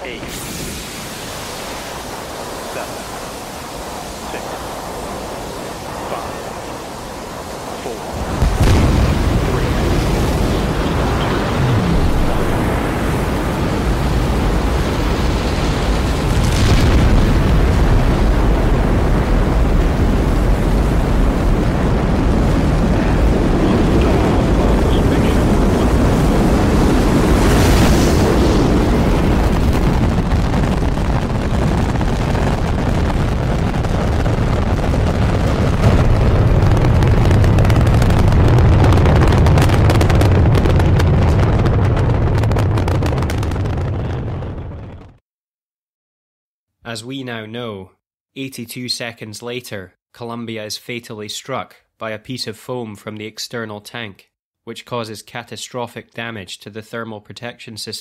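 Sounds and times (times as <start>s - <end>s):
rocket engines roaring: 0.0s - 44.2s.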